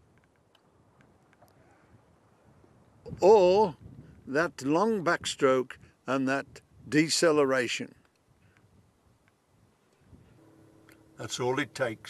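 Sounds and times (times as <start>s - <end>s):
faint steady hum: 7.8s - 12.0s.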